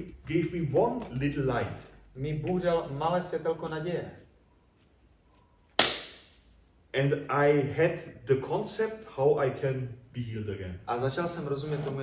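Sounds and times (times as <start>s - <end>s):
sharp hand clap: 5.8s - 6.3s.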